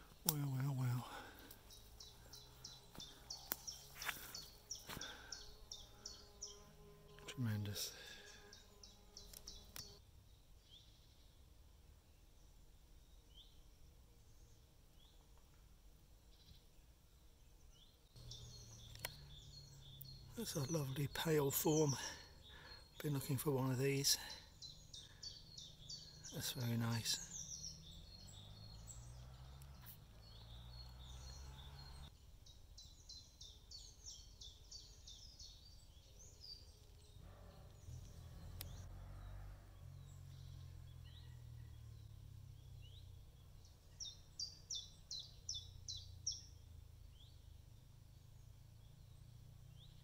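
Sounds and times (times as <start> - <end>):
songbird singing high notes: 18.2 - 32.1.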